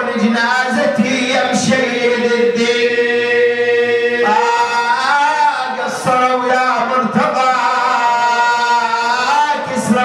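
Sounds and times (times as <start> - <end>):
man chanting a lament: 0.0 - 10.0.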